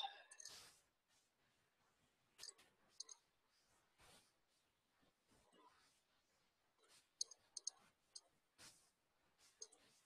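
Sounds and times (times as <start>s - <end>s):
computer mouse clicks: 0.3s - 0.7s, 2.4s - 3.2s, 7.2s - 8.3s, 9.6s - 9.9s.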